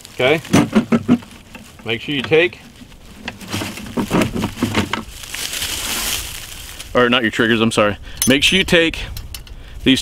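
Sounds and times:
soft rustle: 0:01.1 - 0:07.1
metal trap chain rattling: 0:08.2 - 0:09.5.

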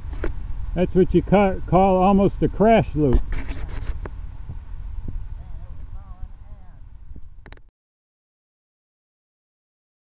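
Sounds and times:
low outdoor rumble: 0:00.0 - 0:07.7
faint distant voice: 0:05.4 - 0:06.8.

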